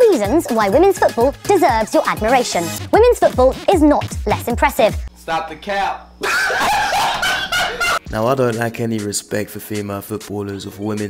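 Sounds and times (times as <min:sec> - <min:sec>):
young men laughing and shrieking: 0:06.2 - 0:08.0.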